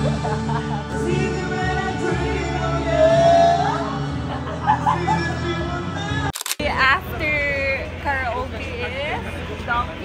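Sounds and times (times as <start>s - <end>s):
karaoke music: 0.0s - 8.2s
street hubbub: 3.4s - 10.0s.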